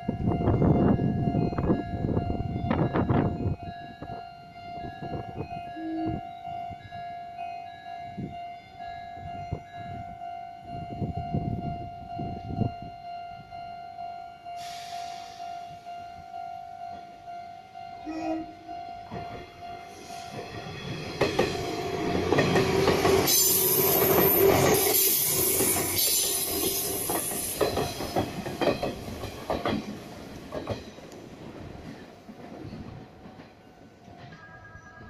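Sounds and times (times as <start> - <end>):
passing train hissing: 14.4 - 16.0, 19.6 - 33.2
train wheels clicking over rail joints: 19.1 - 34.4.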